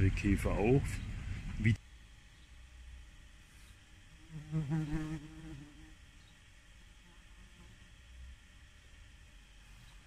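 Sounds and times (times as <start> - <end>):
flying insect buzzing: 3.4 - 8.3.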